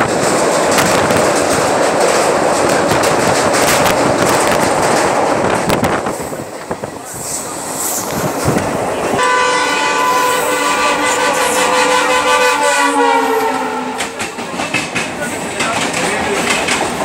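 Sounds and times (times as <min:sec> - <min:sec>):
train clattering over rails: 0:00.0 - 0:17.0
train horn: 0:09.2 - 0:14.4.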